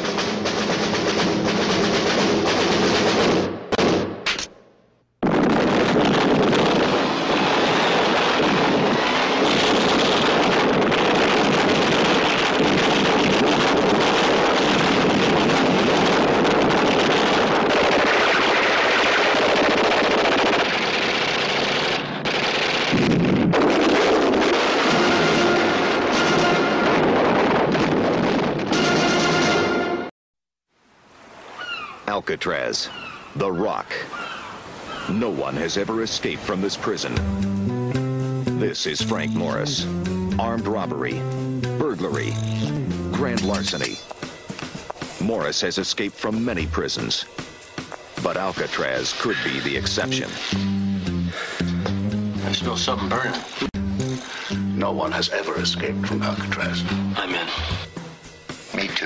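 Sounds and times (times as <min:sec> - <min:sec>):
gunfire: 0:02.1 - 0:04.5, 0:05.2 - 0:26.5
soundtrack music: 0:37.2 - 0:44.4, 0:46.3 - 0:47.4, 0:49.2 - 0:59.0.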